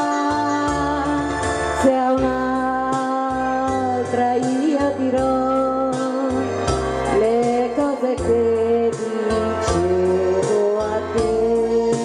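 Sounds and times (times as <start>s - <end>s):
slow ballad backing track: 0.0s - 12.0s
woman singing into a microphone: 0.0s - 12.0s.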